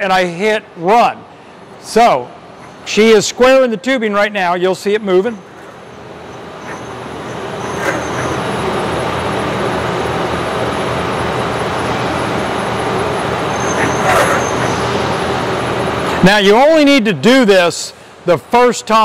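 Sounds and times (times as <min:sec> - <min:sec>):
tube cutter machine whirring: 0:01.6 - 0:03.5, 0:05.3 - 0:16.2.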